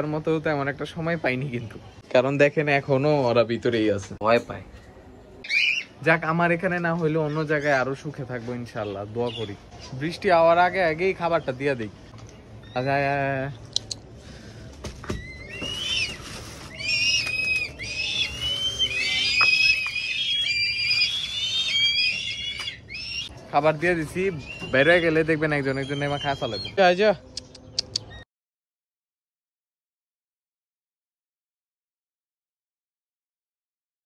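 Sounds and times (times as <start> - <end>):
bird high call: 5.4 - 6.0, 15.2 - 23.3.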